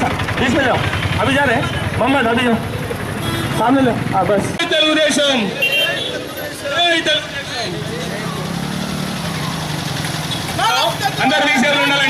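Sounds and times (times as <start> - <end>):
engine idling: 0.0 - 12.0
men calling out: 4.7 - 12.0.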